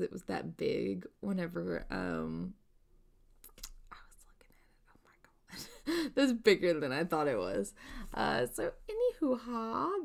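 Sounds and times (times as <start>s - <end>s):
woman's breathy laugh: 5.5s - 6.2s.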